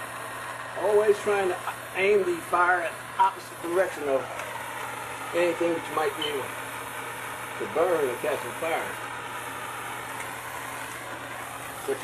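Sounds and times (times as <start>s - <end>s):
gas torch flame hissing: 0.0s - 12.0s.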